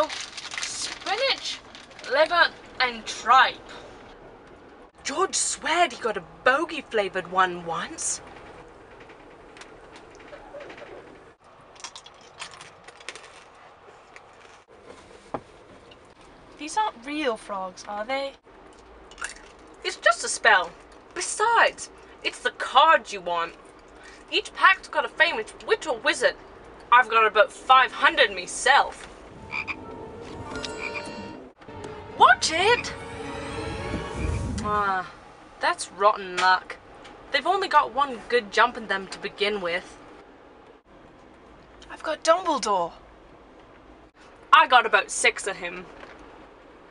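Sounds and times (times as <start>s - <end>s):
tissue paper crinkling: 0.0s - 2.2s
train carriage rumble: 0.0s - 46.9s
frog croaking chirps: 29.4s - 29.9s, 30.5s - 31.3s.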